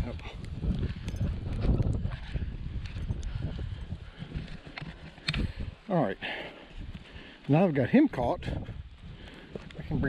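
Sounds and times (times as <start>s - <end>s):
hoof steps: 0.0s - 10.0s.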